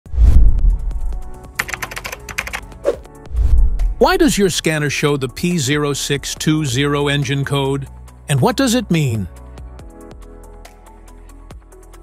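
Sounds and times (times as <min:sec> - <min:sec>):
deep bass hit: 0:00.1 - 0:01.2, 0:03.3 - 0:04.2
typing-like clicks: 0:01.6 - 0:02.7
narration: 0:04.0 - 0:09.3.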